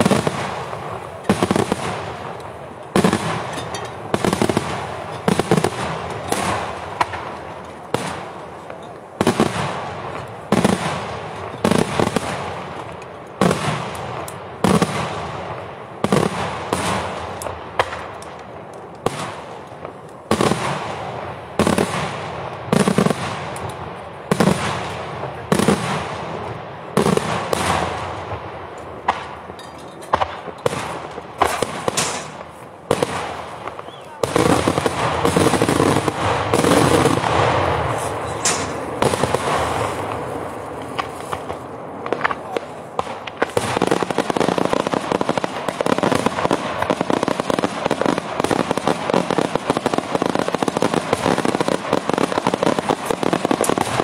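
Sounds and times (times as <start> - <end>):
fireworks bursting with echo: 0.0 - 54.0.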